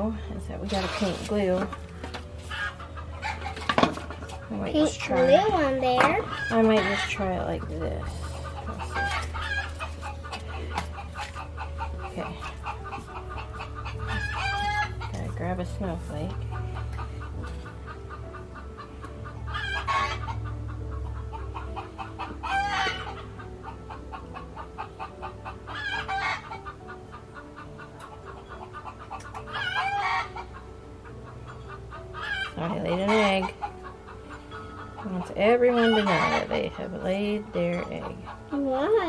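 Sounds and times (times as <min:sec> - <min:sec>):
hens cackling: 0:02.4 - 0:04.4, 0:06.2 - 0:38.8.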